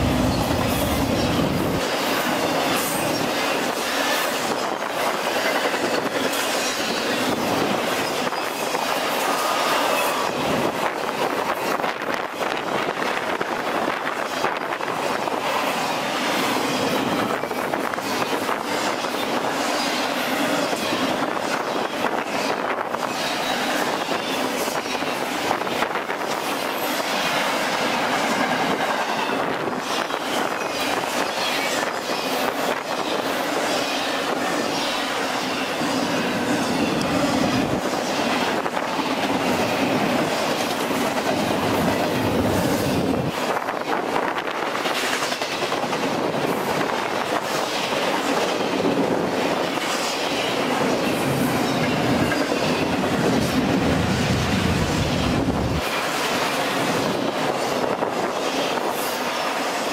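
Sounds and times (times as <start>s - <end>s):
freight train rumbling past: 0.0s - 59.9s.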